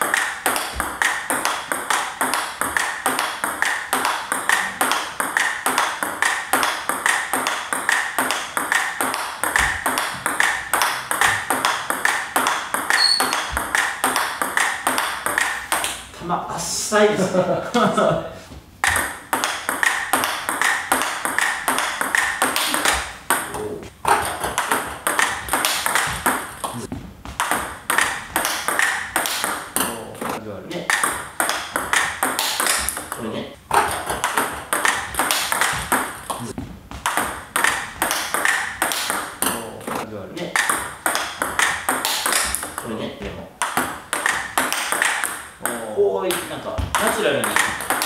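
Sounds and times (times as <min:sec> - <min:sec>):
table tennis ball pocking: 0:00.0 - 0:16.1, 0:18.8 - 0:42.9, 0:43.6 - 0:48.0.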